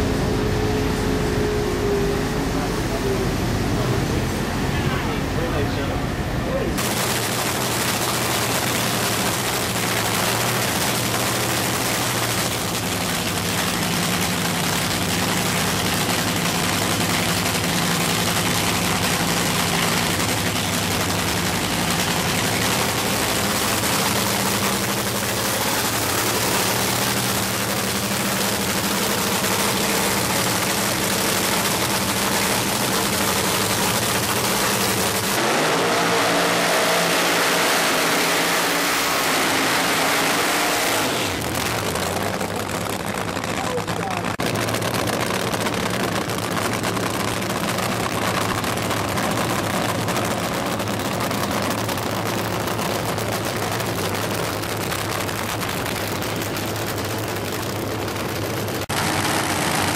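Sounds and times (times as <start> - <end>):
race car engine idling loudly: 0.0 - 59.9.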